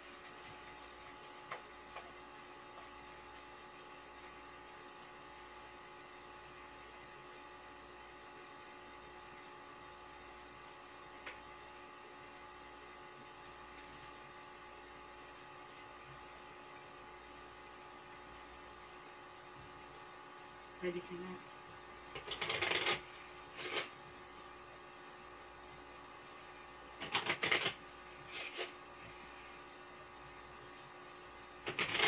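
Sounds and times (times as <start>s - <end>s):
electrical hum: 0.0s - 32.0s.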